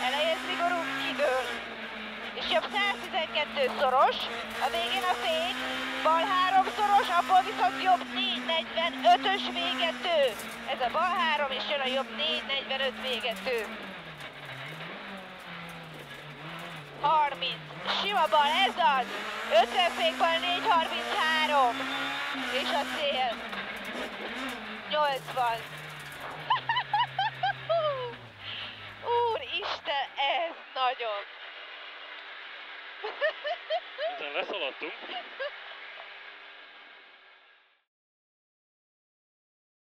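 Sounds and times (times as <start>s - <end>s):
rally car engine revving: 0.0s - 36.8s
person laughing: 26.5s - 28.2s, 33.0s - 35.6s.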